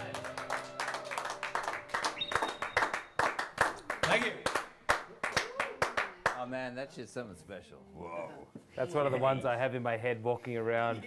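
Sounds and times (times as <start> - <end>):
people clapping: 0.0 - 6.5.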